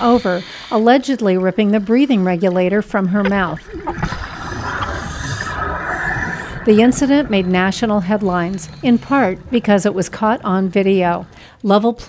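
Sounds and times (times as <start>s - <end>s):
underwater bubbles rushing: 1.4s - 11.5s.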